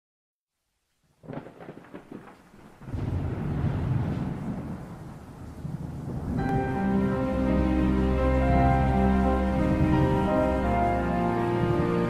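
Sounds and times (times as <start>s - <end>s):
thunder crackling and rumbling: 1.2s - 12.0s.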